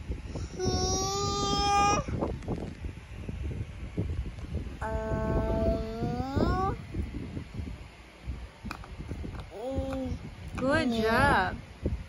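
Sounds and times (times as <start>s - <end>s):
child's drawn-out vocal sound: 0.4s - 2.2s, 4.8s - 6.8s.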